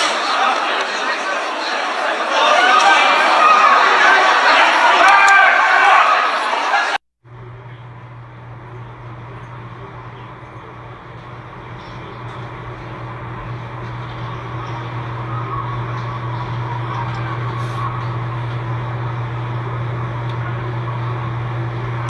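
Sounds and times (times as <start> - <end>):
muffled crowd noise: 0.0 - 22.0
constant low hum: 7.3 - 22.0.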